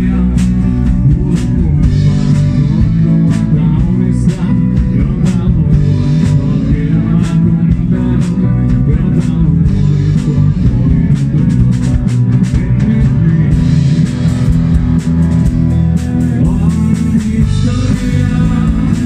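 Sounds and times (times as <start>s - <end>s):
acoustic guitar: 0.0s - 19.0s
drum kit steady beat: 0.0s - 19.0s
electric bass: 0.0s - 19.0s
electric guitar: 0.0s - 19.0s.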